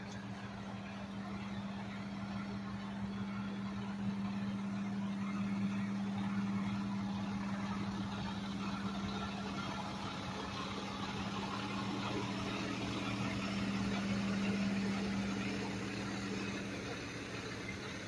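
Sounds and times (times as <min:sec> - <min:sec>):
vehicle engine idling: 0:00.0 - 0:18.0.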